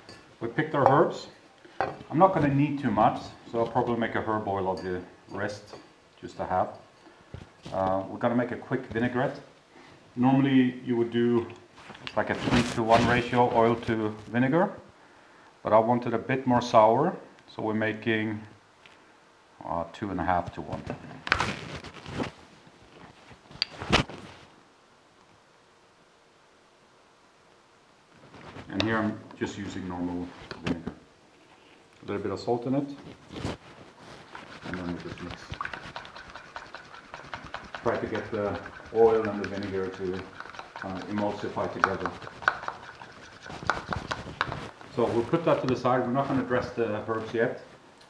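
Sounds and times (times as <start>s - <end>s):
glass clinking: 4.7s - 5.9s
spoon stirring in glass bowl: 34.1s - 45.3s.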